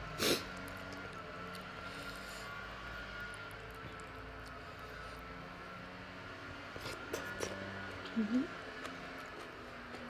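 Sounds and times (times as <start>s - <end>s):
steady mechanical hum: 0.0s - 10.0s
fingers picking through food: 0.4s - 2.5s, 3.1s - 5.0s.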